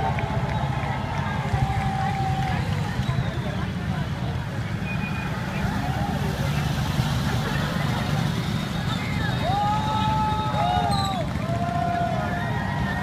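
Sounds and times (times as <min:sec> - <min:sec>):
vehicles driving past: 0:00.0 - 0:13.0
voices of onlookers: 0:00.0 - 0:13.0.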